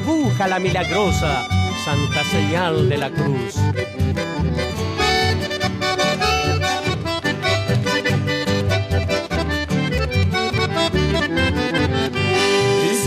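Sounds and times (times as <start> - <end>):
accordion playing quick notes: 0.0 - 13.0
pulsing bass: 0.0 - 13.0.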